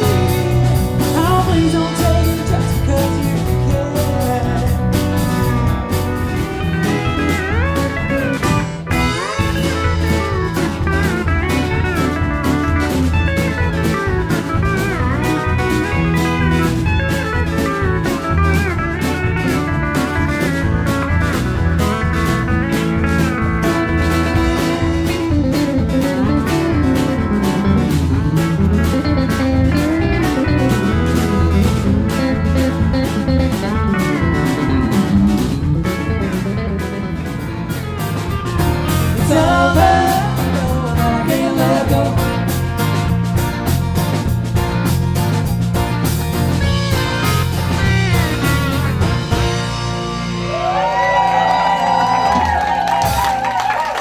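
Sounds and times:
steel guitar lead lines: 0.0 - 53.2
country band playing: 0.0 - 54.0.

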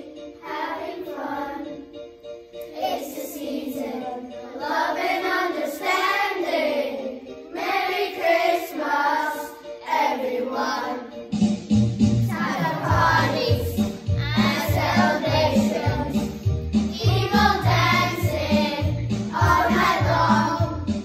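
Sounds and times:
children singing christmas song: 0.0 - 11.4, 12.1 - 21.0.

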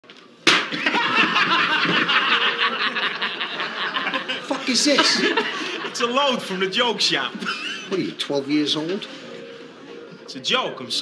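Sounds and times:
cigarette load bang: 0.4 - 0.8
man laughing loudly: 0.8 - 6.0, 7.4 - 8.0.

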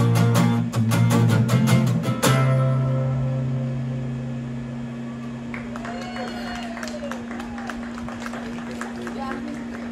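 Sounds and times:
acoustic guitar chord ringing: 0.0 - 5.5.

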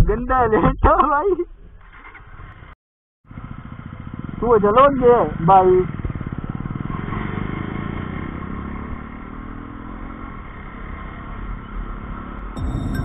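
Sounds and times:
motorcycle engine accelerating: 3.3 - 13.0.

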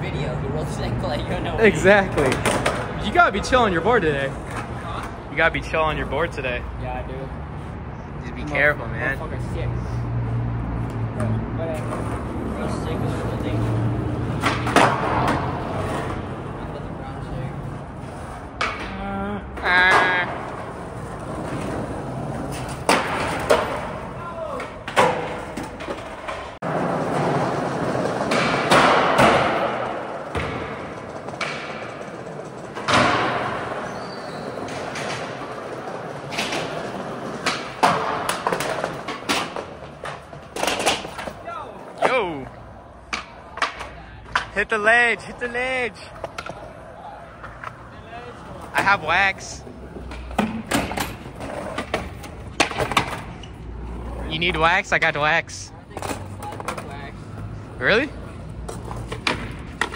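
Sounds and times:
skateboard wheels rolling on concrete: 0.0 - 59.9
skateboard clacks and thuds: 2.1 - 3.0, 14.2 - 16.3, 19.8 - 42.3, 49.9 - 53.4, 58.6 - 59.9.

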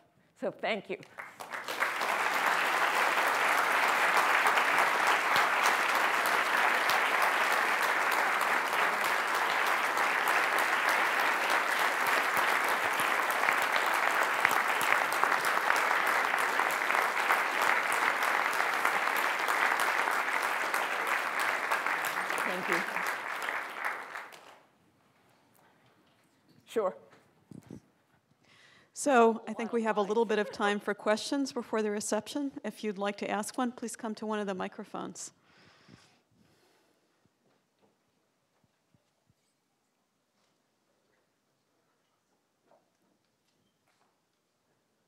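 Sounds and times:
audience applauding: 1.1 - 24.7.

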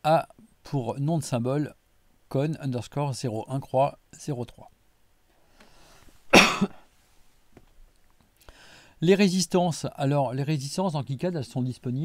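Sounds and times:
faint breath: 5.4 - 6.2, 8.4 - 9.0
man coughing: 6.3 - 6.8.

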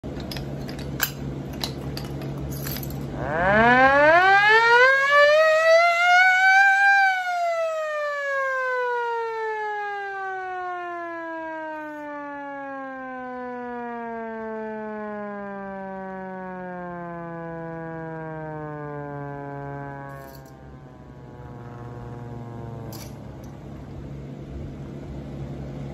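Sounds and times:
hand-crank siren wailing: 0.0 - 23.8.

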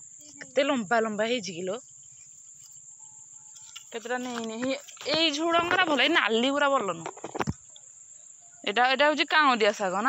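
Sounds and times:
insects droning: 0.0 - 10.0
woman speaking: 0.4 - 1.8, 3.9 - 7.1, 8.6 - 10.0.

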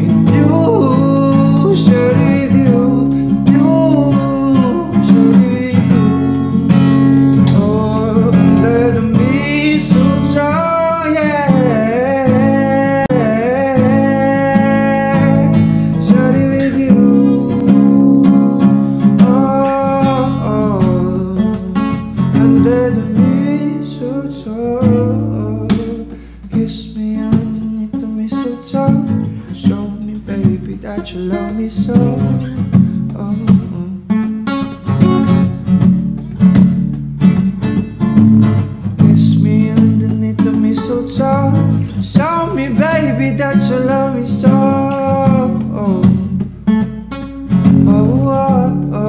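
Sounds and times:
person singing: 0.0 - 34.8, 38.6 - 46.4, 47.7 - 49.0
acoustic guitar: 0.0 - 49.0.

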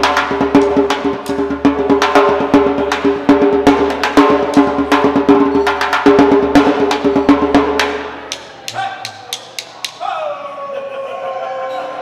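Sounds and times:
djembe drum strokes: 0.0 - 10.0.

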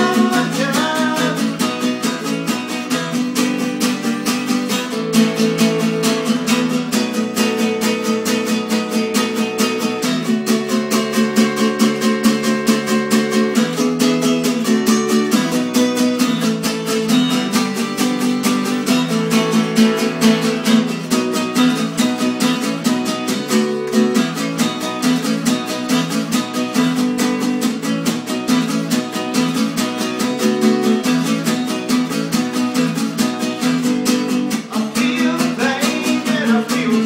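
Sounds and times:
acoustic guitar strummed fast: 0.0 - 37.0.

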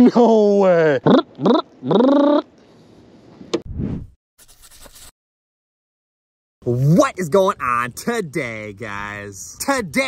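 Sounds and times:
man laughing: 0.0 - 2.1
short whoosh: 3.7 - 4.2.

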